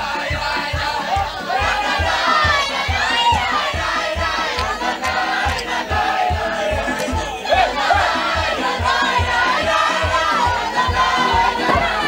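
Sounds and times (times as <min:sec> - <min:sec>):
group singing and shouting: 0:00.0 - 0:12.0
music with low beat: 0:00.0 - 0:12.0.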